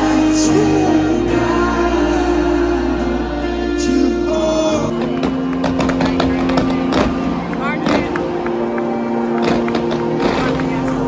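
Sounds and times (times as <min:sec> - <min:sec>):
crowd cheering and shouting: 0:00.0 - 0:11.0
fireworks bangs and crackles: 0:04.9 - 0:11.0.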